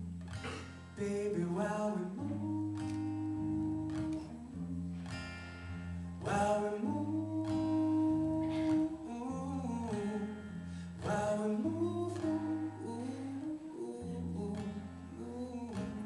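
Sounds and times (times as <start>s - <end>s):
acoustic guitar strumming chords: 0.0s - 16.0s
wordless vocal line: 6.2s - 10.4s.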